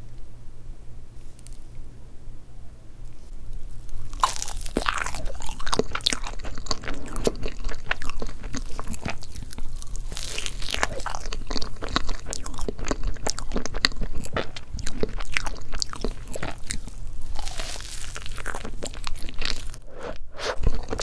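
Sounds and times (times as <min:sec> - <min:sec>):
biting into cake: 0:03.9 - 0:21.0
chewing mouth sounds: 0:04.0 - 0:21.0.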